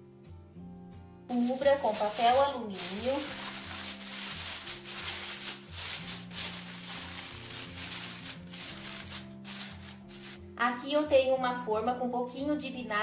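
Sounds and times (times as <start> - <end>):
background music with low notes: 0.0 - 13.0
aluminium foil crinkling: 1.3 - 10.4.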